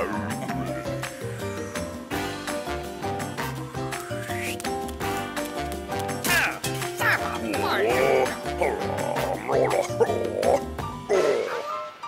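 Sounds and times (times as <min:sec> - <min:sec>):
garbled cartoon voice: 0:07.5 - 0:10.6.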